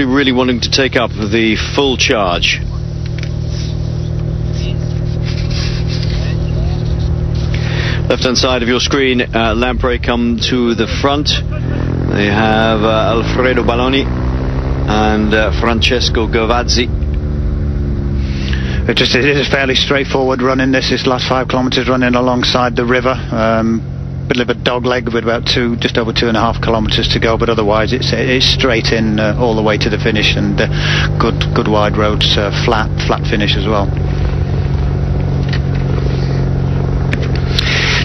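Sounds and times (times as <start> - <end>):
motorcycle engine drone: 0.0 - 38.0
road noise: 0.0 - 38.0.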